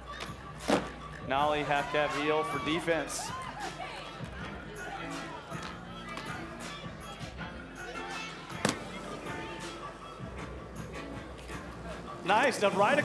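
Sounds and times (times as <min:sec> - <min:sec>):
background music: 0:00.0 - 0:13.0
faint crowd voices: 0:00.0 - 0:13.0.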